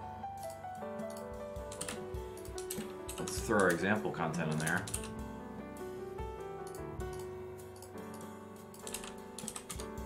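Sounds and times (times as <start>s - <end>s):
computer keyboard typing: 0.4s - 5.3s, 6.6s - 10.0s.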